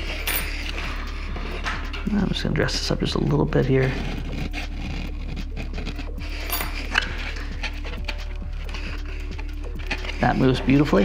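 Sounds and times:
soft background music: 0.0 - 11.0
razor blade scraping foam board: 3.8 - 9.4.

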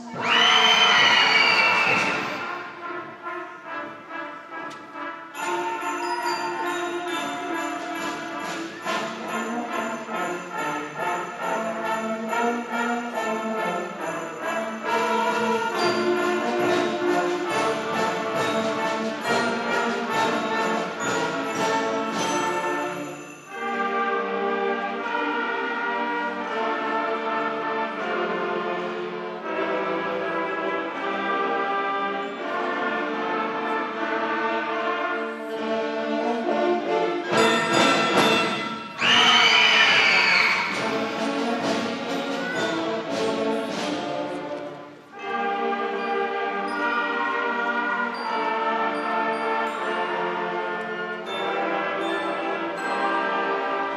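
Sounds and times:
brass and woodwinds: 0.0 - 53.9
percussion: 0.0 - 53.9
concert band playing: 35.6 - 48.2.

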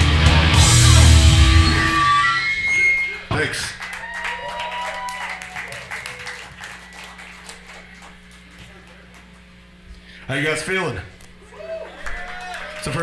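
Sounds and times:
live band final chord: 0.0 - 2.4
amplifier hum: 0.0 - 5.0, 6.1 - 12.6
crowd clapping and cheering: 2.6 - 9.7, 11.5 - 13.0.

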